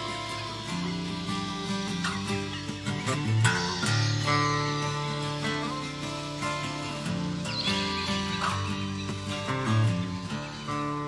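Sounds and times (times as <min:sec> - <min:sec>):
guitar music: 0:00.0 - 0:11.0
high wavering gliding tone: 0:00.0 - 0:11.0.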